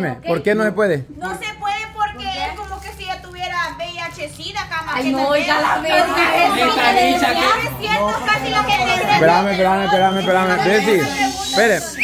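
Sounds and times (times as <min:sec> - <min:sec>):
people arguing loudly: 0:05.0 - 0:12.0.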